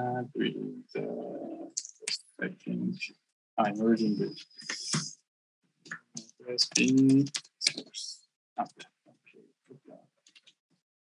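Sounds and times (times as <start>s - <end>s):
man humming: 0.0s - 1.7s
typing on keyboard: 6.2s - 7.8s.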